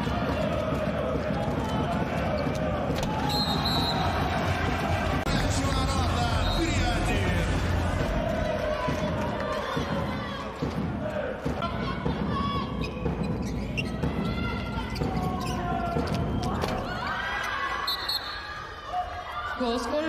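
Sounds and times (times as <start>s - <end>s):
players shouting: 0.0s - 13.1s.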